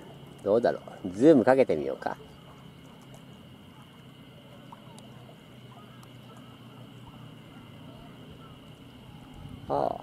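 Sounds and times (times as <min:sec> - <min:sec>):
faint high steady tone: 0:00.0 - 0:10.0
low steady hum: 0:00.0 - 0:10.0.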